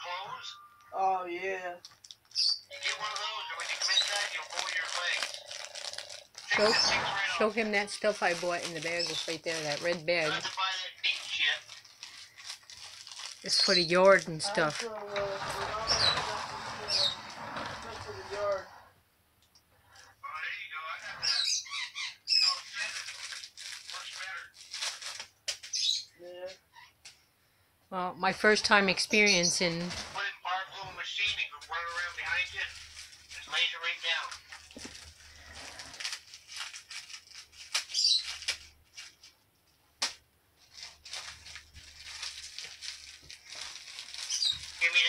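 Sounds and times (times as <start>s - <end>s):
plastic crinkling and rustling: 1.8s - 18.7s, 22.4s - 25.9s, 28.4s - 45.0s
plastic bag crumpling: 2.0s - 18.6s, 22.4s - 25.8s, 31.7s - 39.4s, 40.6s - 45.0s.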